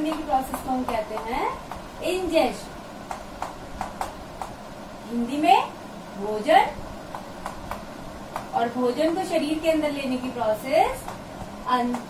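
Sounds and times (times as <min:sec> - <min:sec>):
chalk tapping on blackboard: 0:00.0 - 0:01.9.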